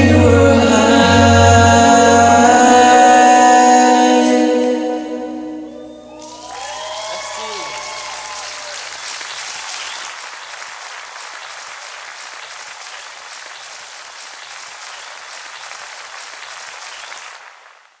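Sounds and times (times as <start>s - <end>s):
held musical notes: 0.0s - 7.7s
audience applauding: 6.1s - 18.0s.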